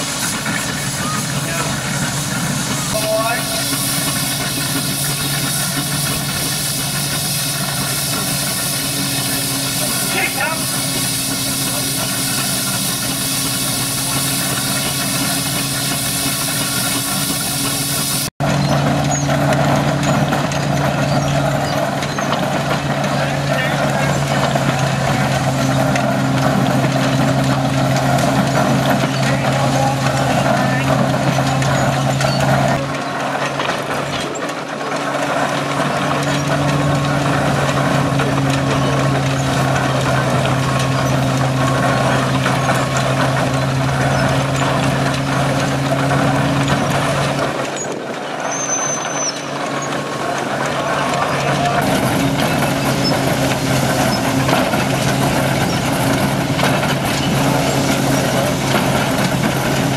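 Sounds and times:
mechanical clatter: 0.0s - 59.9s
threshing drum droning hum: 0.0s - 59.9s.

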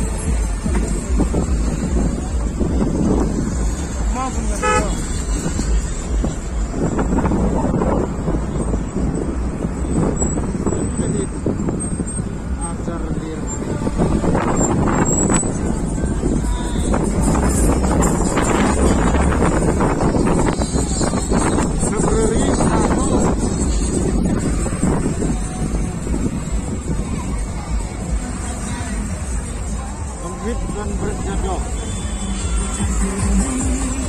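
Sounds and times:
wind on microphone: 0.0s - 4.1s, 5.2s - 12.6s, 13.4s - 29.4s
people's voices: 0.0s - 34.0s
vehicle low rumble: 0.0s - 34.0s
car horns tooting: 3.8s - 6.4s, 31.3s - 34.0s.

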